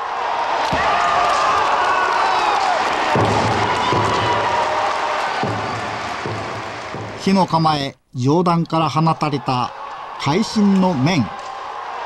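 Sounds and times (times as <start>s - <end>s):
spectators cheering and applauding: 0.0s - 7.6s, 8.9s - 12.0s.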